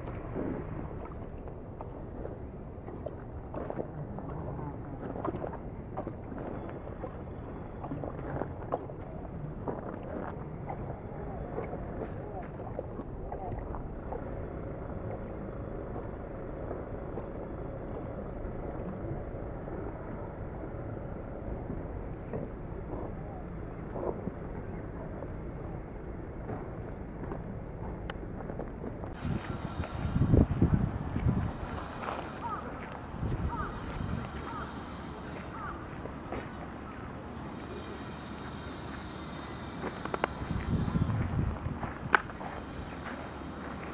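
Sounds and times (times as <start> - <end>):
wind rumbling on microphone: 0.0 - 43.9
faint ticks: 31.2 - 43.9.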